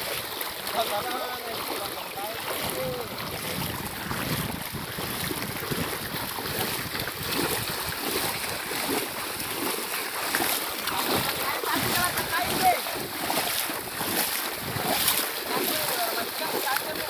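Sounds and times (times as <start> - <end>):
feet wading through water: 0.0 - 17.0.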